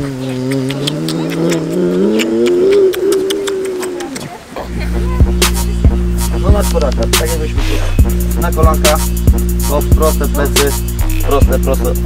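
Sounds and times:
person wordless vocal sound: 0:00.0 - 0:09.2.

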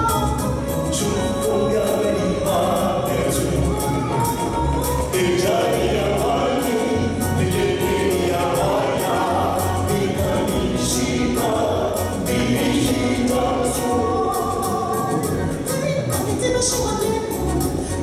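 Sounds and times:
gospel group singing in harmony: 0:00.0 - 0:18.0
sustained bass line: 0:00.0 - 0:18.0.

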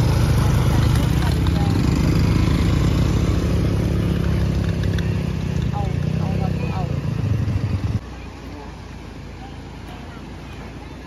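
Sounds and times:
quad bike engine running: 0:00.0 - 0:11.0.

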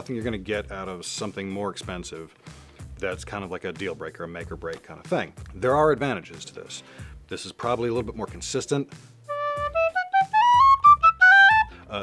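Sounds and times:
tin whistle run of notes: 0:09.3 - 0:11.8.

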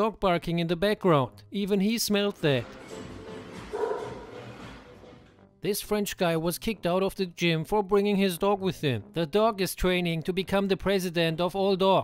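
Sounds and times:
noisy room: 0:02.3 - 0:05.6
dog barking: 0:03.7 - 0:04.4.

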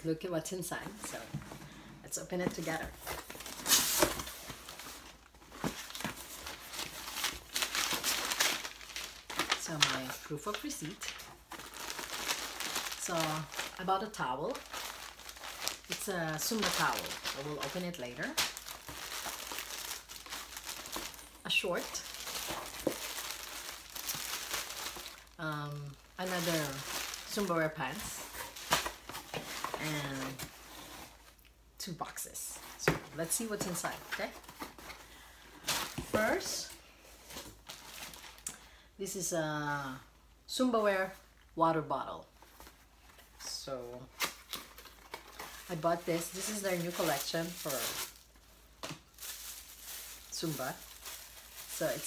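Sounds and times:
cardboard boxes scuffing and rustling: 0:02.3 - 0:09.5, 0:21.8 - 0:25.2
plastic packaging crinkling: 0:02.6 - 0:31.3, 0:44.1 - 0:52.0.

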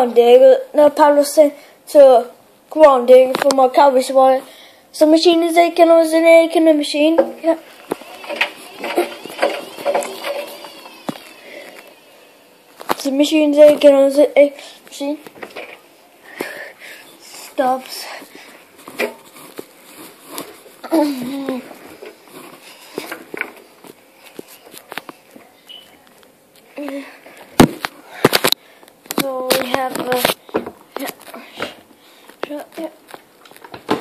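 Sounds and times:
fabric rubbing on microphone: 0:18.7 - 0:23.1.

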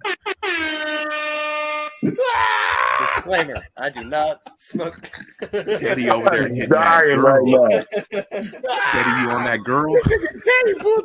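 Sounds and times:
air horn blast: 0:00.2 - 0:02.0.

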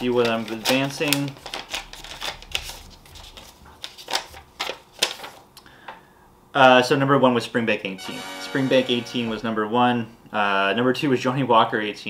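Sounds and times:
paper being unfolded: 0:00.0 - 0:05.4.

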